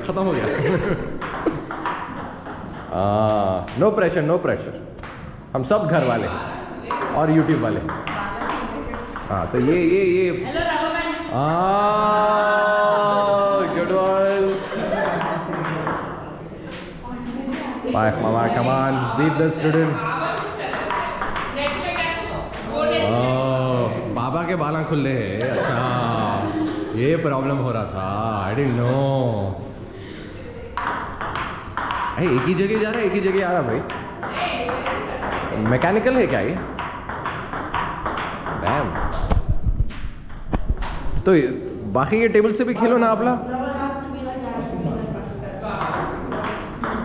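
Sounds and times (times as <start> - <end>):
ball bouncing on table: 1.1 - 4.1, 5.0 - 5.4, 6.9 - 9.6, 14.1 - 16.2, 19.6 - 22.8, 30.7 - 41.2, 45.7 - 47.0
table tennis ball clicking off bats: 1.2 - 4.0, 15.0 - 16.2, 19.6 - 21.8, 30.8 - 41.0, 45.8 - 47.0
table tennis ball clicks: 30.8 - 33.2.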